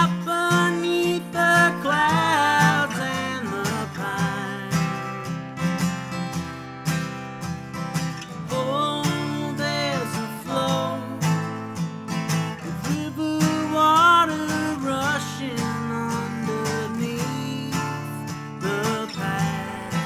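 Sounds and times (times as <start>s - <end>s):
person singing: 0.0s - 5.3s, 8.4s - 11.6s, 12.6s - 20.0s
acoustic guitar strumming: 0.0s - 20.0s.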